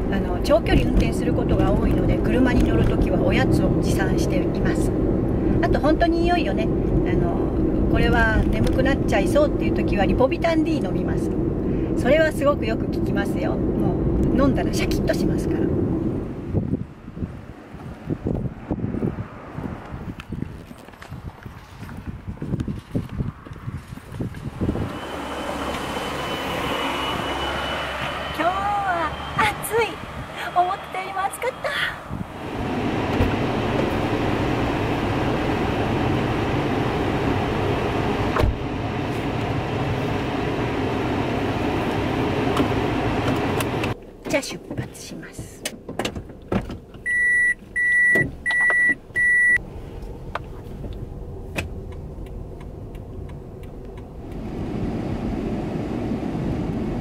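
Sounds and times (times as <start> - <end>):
woman's voice: 0.0 - 5.0, 5.6 - 11.4, 12.0 - 15.8, 28.4 - 32.1, 44.3 - 45.7
road vehicle passing: 0.0 - 45.6, 47.6 - 57.0
low hum of running car: 0.0 - 57.0
footsteps on pavement: 19.4 - 24.6.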